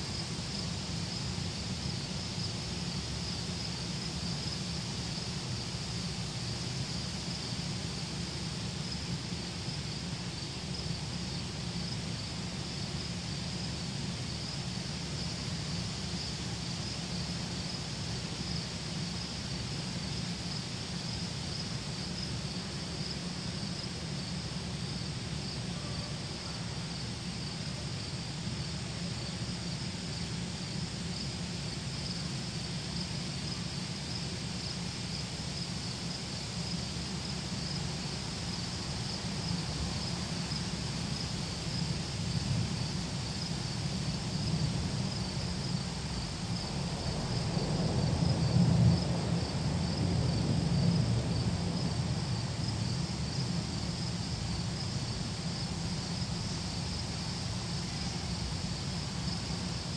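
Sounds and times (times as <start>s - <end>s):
insect chorus chirring: 0.0s - 59.9s.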